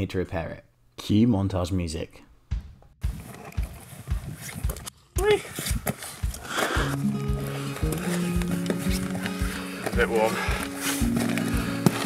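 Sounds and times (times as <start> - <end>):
footsteps crunching on scree: 5.7 - 12.0.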